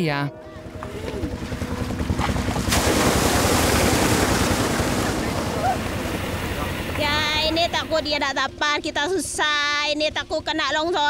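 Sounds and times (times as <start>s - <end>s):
water rushing through slurry: 1.4s - 8.0s.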